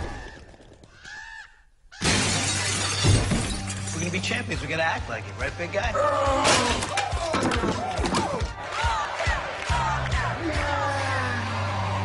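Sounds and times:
glass shattering crash: 2.0s - 4.4s.

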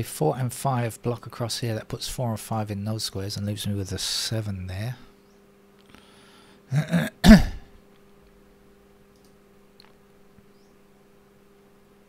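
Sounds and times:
person coughing: 6.7s - 7.7s.

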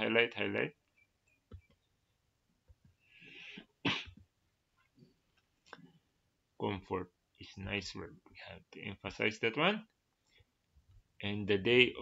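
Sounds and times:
man sneezing: 3.6s - 4.2s.

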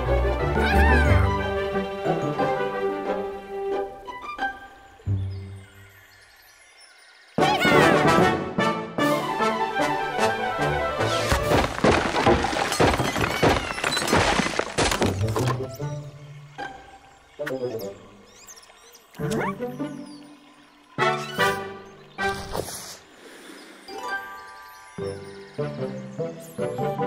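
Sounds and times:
orchestral music: 0.0s - 5.1s, 7.4s - 11.6s.

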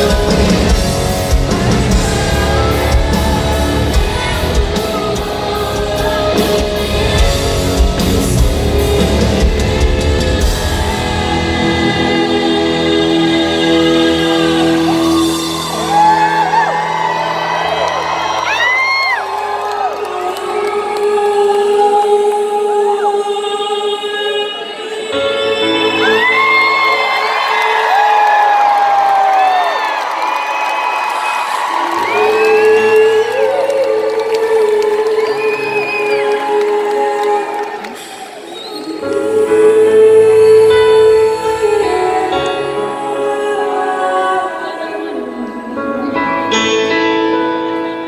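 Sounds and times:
audience whooping and cheering: 13.6s - 21.5s, 25.7s - 39.2s.

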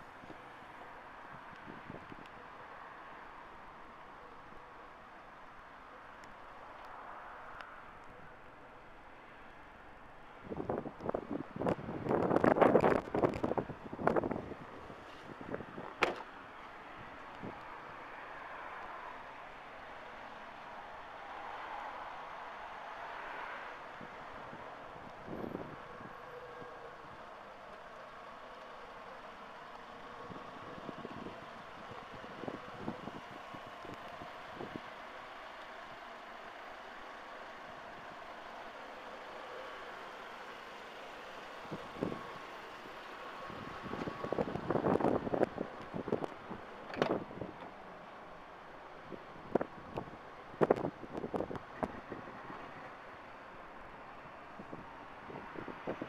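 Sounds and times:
distant traffic hum: 0.0s - 56.0s.

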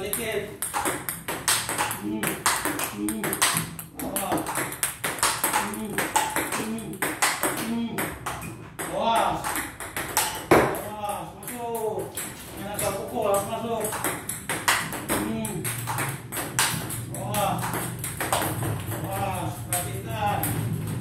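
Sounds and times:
table tennis ball clicking: 0.0s - 8.5s, 9.4s - 10.7s, 13.0s - 21.0s.

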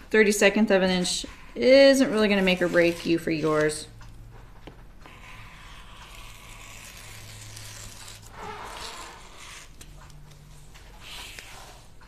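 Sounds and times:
rotary cutter scraping through fabric: 1.2s - 3.8s, 5.0s - 10.1s.

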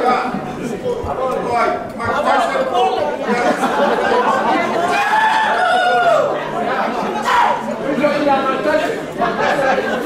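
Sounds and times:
man speaking through microphone: 0.0s - 3.6s
people chattering: 0.0s - 10.0s.

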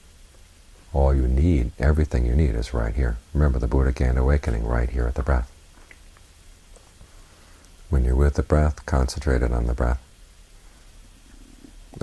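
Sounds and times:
light hiss: 0.0s - 12.0s
low steady hum: 0.0s - 12.0s.

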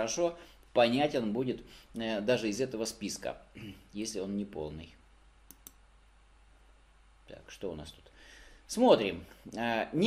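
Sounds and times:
computer mouse clicks: 5.4s - 5.8s.

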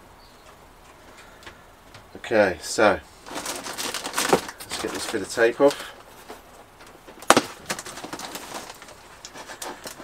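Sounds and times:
tape crackling: 2.8s - 10.0s
packing tape ripping: 3.2s - 6.4s, 7.1s - 10.0s.

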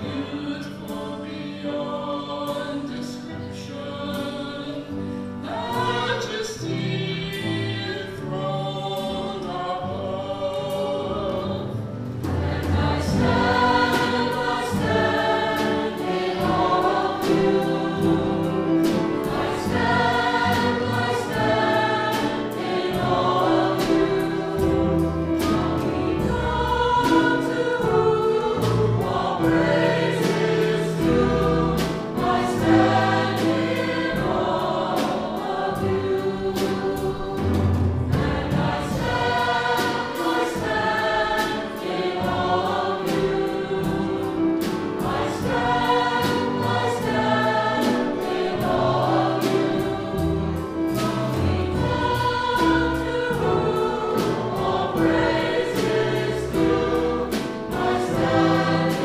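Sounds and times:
church choir singing: 0.0s - 59.0s
instrumental ensemble: 0.0s - 59.0s.

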